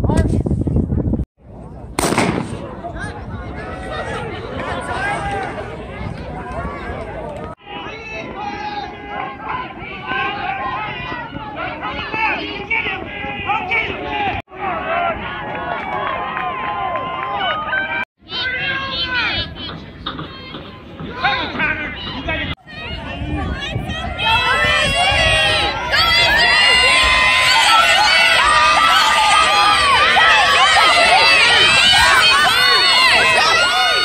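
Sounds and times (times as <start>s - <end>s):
starter's pistol crack: 2.0s - 2.6s
crowd shouting and cheering: 2.6s - 34.0s.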